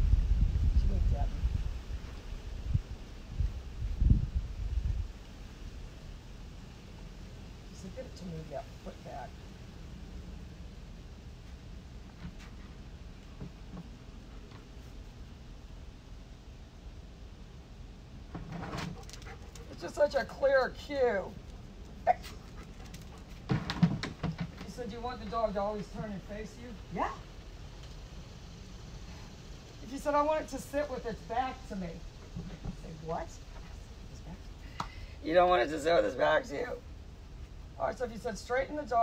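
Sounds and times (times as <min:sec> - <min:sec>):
wind buffeting microphone: 0:00.0 - 0:06.1
faint steady hiss: 0:00.0 - 0:39.0.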